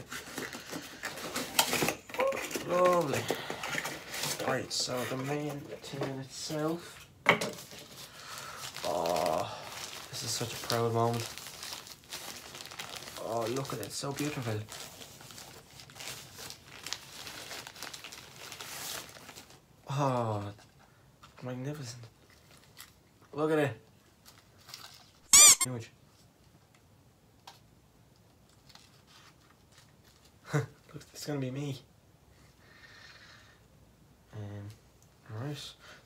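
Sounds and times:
packaging clicks and rustles: 0.0s - 6.4s, 7.6s - 19.6s
plastic wrapping crinkling: 7.6s - 19.6s, 22.2s - 23.2s.

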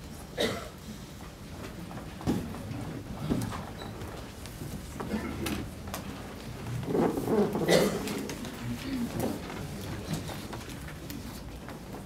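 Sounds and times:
murmur of voices: 4.6s - 11.4s.

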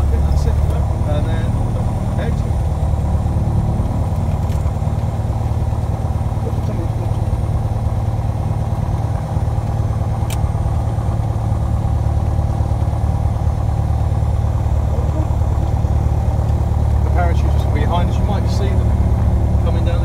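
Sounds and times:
aircraft engine droning: 0.0s - 20.0s.

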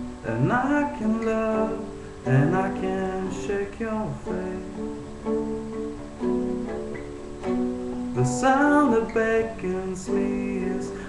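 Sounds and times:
acoustic string instrument strumming: 0.0s - 11.0s.

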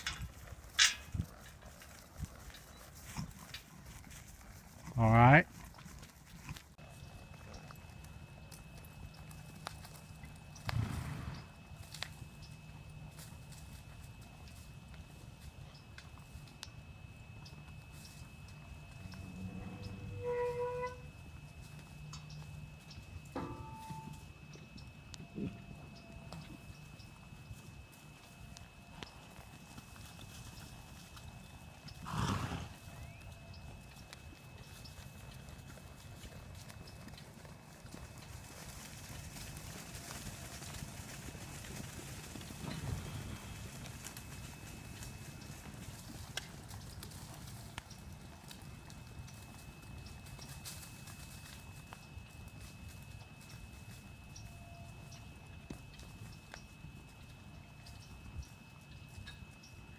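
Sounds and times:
horse hooves on soft dirt: 0.0s - 59.9s
faint steady high tone: 16.6s - 29.3s, 49.2s - 59.9s.

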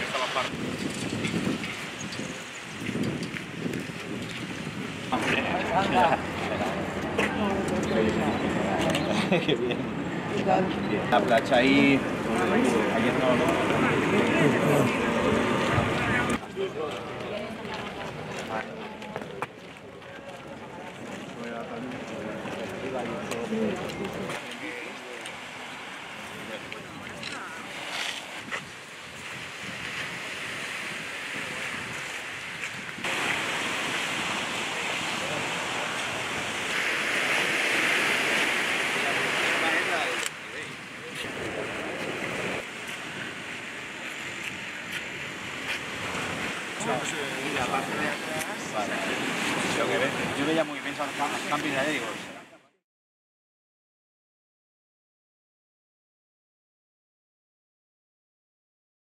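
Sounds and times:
waves washing onto beach: 0.0s - 52.6s
wind: 0.0s - 52.8s.

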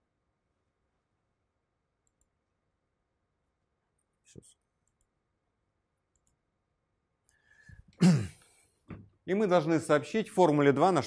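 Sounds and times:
faint computer mouse clicks: 2.0s - 2.4s, 4.8s - 5.1s, 6.1s - 6.4s.

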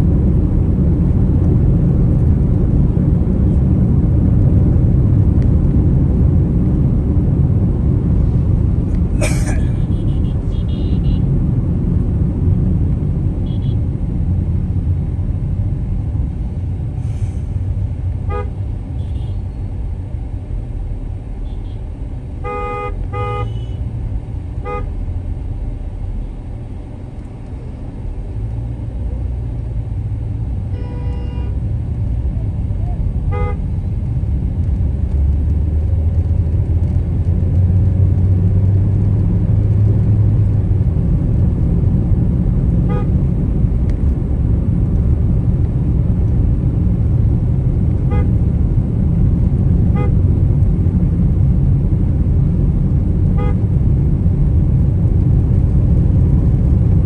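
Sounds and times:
car engine and road noise: 0.0s - 57.0s
vehicle horn toots: 9.6s - 11.3s, 13.4s - 13.8s, 18.3s - 19.4s, 22.4s - 23.8s, 24.6s - 24.9s, 30.7s - 31.6s, 33.3s - 33.6s, 42.9s - 43.2s, 48.1s - 48.3s, 49.9s - 50.2s, 53.4s - 53.6s.

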